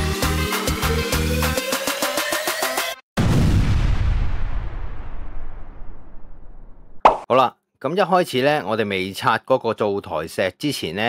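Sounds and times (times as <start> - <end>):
rumbling boom sound effect: 3.2 - 7.2
man narrating: 7.3 - 11.0.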